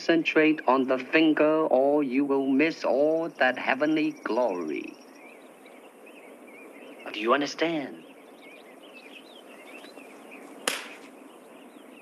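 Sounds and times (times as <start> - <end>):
birds chirping: 0.0 - 12.0
steady outdoor hiss: 0.0 - 12.0
sharp smack: 10.6 - 11.1.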